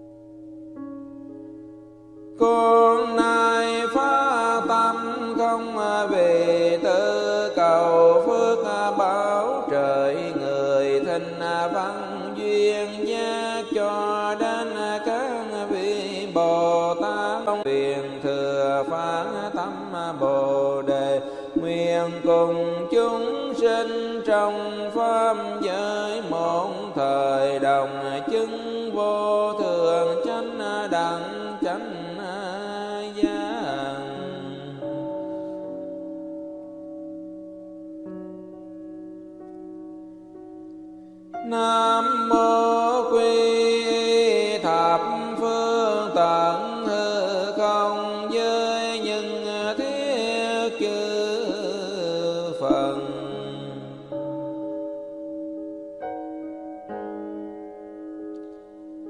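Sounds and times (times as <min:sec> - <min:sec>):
musical backing: 0:00.0 - 0:59.0
melodic chanting voice: 0:02.4 - 0:36.6.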